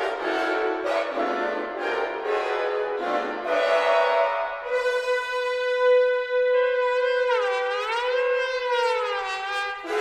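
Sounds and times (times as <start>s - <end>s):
held brass note: 3.5s - 10.0s.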